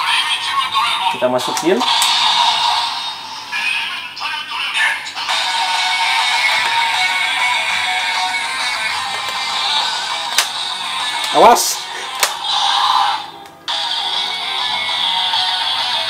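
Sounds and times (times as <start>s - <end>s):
toy belt electronic music with chant: 0.0s - 16.0s.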